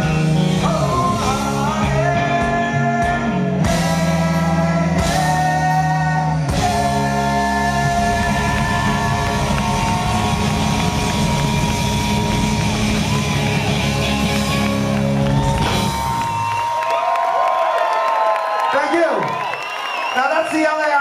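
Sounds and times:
rock band playing: 0.0s - 16.8s
crowd cheering and whooping: 6.6s - 21.0s.

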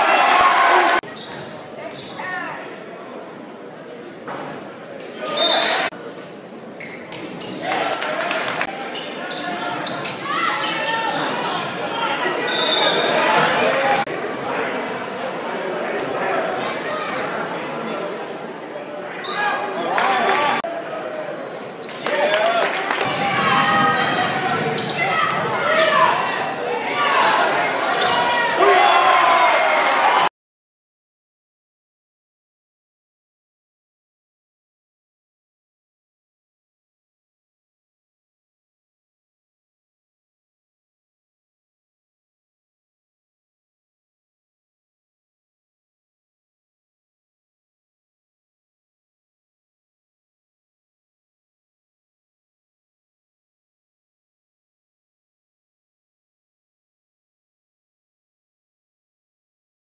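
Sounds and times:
crowd murmur in a gym: 0.0s - 30.0s.

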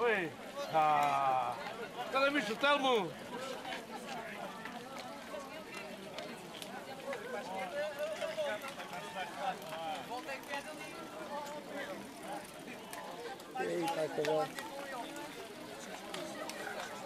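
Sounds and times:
crowd talking and calling: 0.0s - 17.0s.

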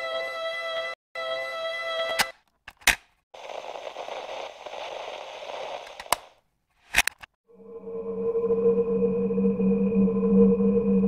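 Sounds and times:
sharp cracks: 2.2s - 7.4s
static-like crackling: 3.4s - 6.4s
dark ambient drone: 7.5s - 11.0s.

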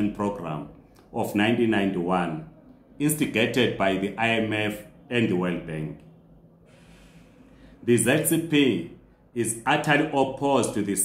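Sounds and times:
man speaking: 0.0s - 6.0s, 7.8s - 11.0s
man breathing in: 6.6s - 7.8s.

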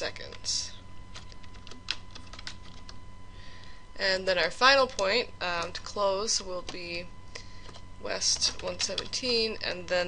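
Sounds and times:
keyboard keystrokes: 1.1s - 3.0s.

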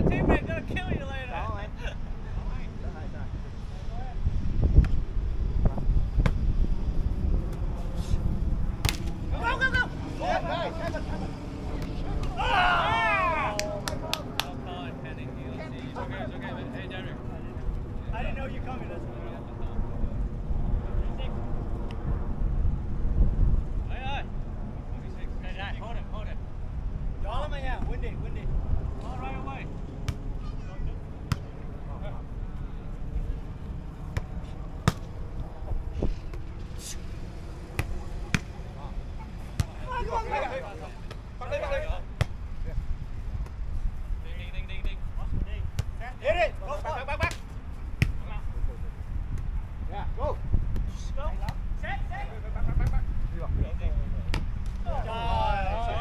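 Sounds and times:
players calling out: 7.5s - 14.8s, 30.2s - 42.8s, 54.6s - 56.0s
hands slapping volleyball: 8.8s - 9.2s, 13.5s - 14.5s.

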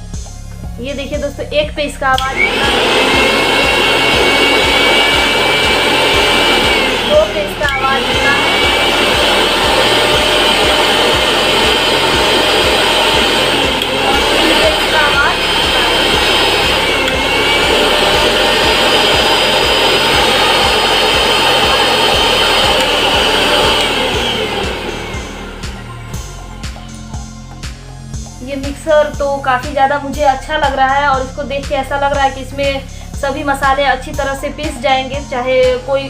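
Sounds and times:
mixer grinder motor whining: 2.0s - 35.9s.

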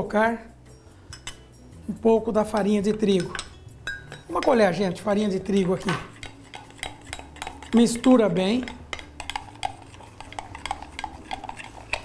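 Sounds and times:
spoon clinking against glass: 1.1s - 1.5s, 2.9s - 4.8s, 5.5s - 12.0s.

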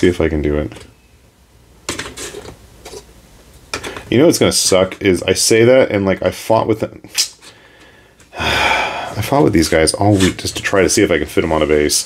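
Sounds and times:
plastic bases clicking and scraping: 1.8s - 3.1s, 3.7s - 4.1s.

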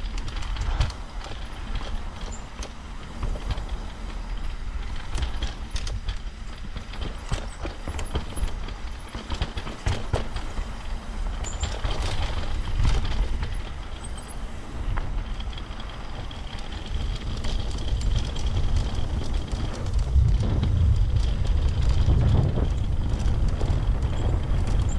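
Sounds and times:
bike rattling: 0.0s - 24.9s
wind buffeting microphone: 0.0s - 24.9s.

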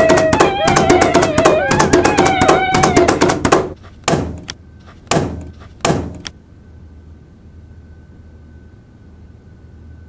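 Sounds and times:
loud thumps: 0.0s - 6.3s
faint high-pitched hum: 6.3s - 10.0s.

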